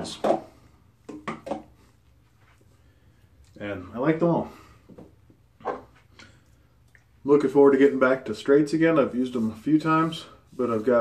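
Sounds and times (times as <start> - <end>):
person speaking: 7.2 - 11.0.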